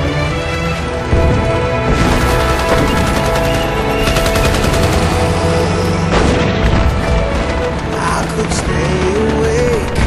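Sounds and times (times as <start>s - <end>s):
film music: 0.0s - 10.0s
rapid gunfire: 1.9s - 10.0s.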